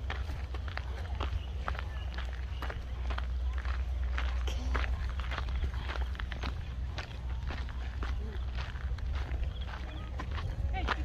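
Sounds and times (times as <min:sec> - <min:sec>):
faint distant voices: 0:00.0 - 0:11.0
footsteps on rocky ground: 0:00.0 - 0:11.0.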